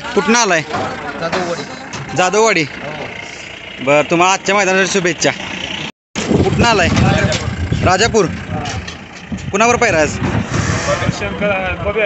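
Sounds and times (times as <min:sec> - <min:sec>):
low engine rumble: 0:00.0 - 0:12.0
voices speaking: 0:00.0 - 0:12.0.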